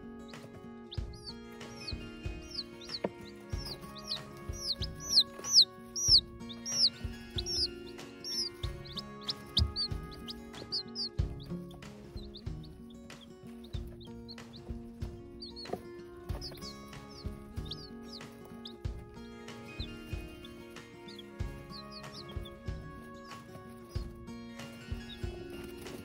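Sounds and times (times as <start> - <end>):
background music: 0.0 - 26.0
chicks peeping: 0.0 - 26.0.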